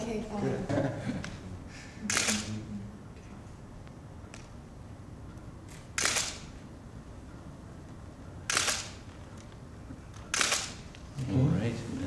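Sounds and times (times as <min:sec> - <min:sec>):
camera shutters firing: 0:02.0 - 0:02.5, 0:05.7 - 0:06.6, 0:08.4 - 0:09.5, 0:10.1 - 0:11.0.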